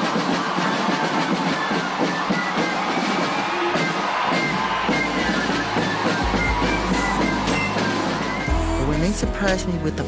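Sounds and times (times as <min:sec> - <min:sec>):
brass marching band playing: 0:00.0 - 0:08.6
crowd cheering: 0:00.0 - 0:09.6.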